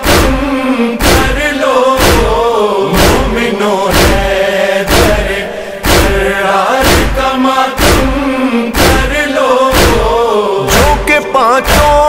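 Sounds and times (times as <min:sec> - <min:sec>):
deep drum hits: 0:00.0 - 0:11.1
person chanting a devotional poem: 0:00.0 - 0:12.0.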